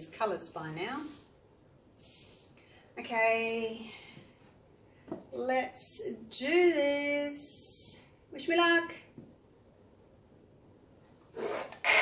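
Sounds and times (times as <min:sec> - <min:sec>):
plastic bowl scraping on canvas: 0:11.3 - 0:12.0.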